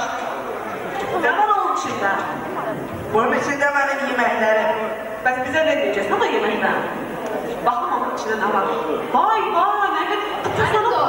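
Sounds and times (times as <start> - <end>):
background chatter: 0.0 - 11.0
person speaking through a microphone: 0.0 - 11.0.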